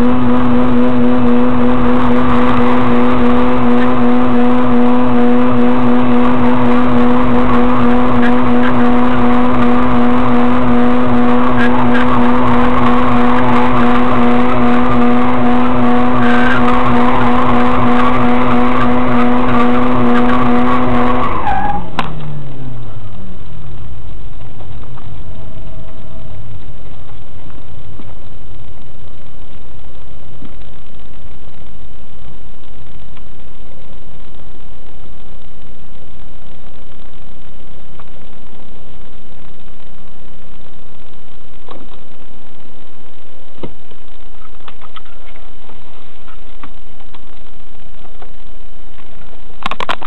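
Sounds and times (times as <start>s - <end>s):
rotary engine at high revs: 0.0s - 22.6s
tyre squeal: 6.1s - 22.1s.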